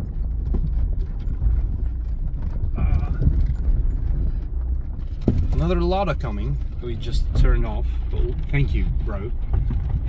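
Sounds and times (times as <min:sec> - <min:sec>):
car cabin low rumble: 0:00.0 - 0:10.0
tyres knocking on loose rocks: 0:00.0 - 0:10.0.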